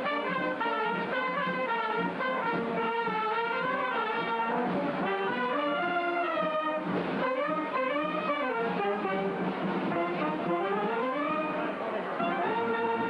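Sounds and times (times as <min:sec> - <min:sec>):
wind band playing melody: 0:00.0 - 0:13.0.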